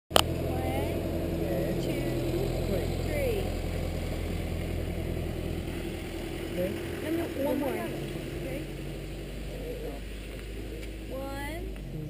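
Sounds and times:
vehicle engine idling: 0.1 - 12.0
faint voices talking: 0.4 - 5.2, 6.4 - 12.0.

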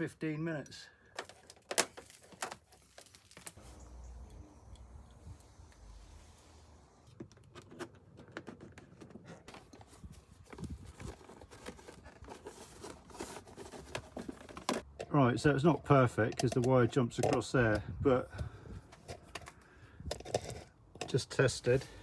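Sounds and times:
clicks and taps of handling tools: 16.3 - 17.8.

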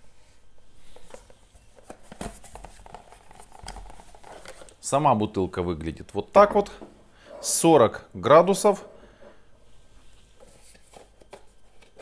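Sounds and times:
man speaking: 4.8 - 8.9.

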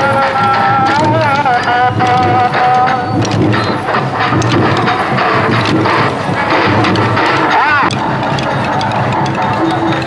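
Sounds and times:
loud music with drums: 0.0 - 10.0.

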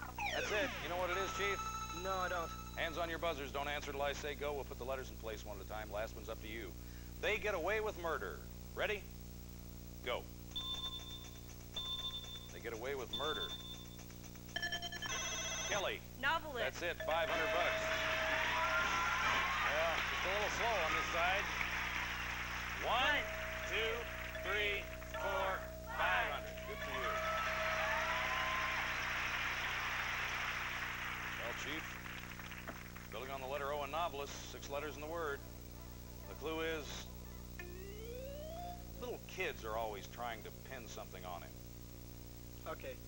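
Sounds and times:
electronic ringing signal: 0.2 - 3.3, 10.5 - 16.0, 17.0 - 29.5, 37.6 - 38.9
held musical tone: 0.2 - 3.3, 17.0 - 21.6, 22.6 - 29.4, 37.6 - 39.2
audience applauding: 17.1 - 33.5.

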